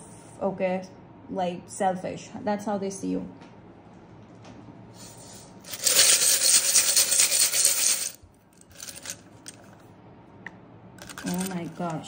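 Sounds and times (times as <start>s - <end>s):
tiles rattling in glass bowl: 5.7s - 9.7s, 11.0s - 12.0s.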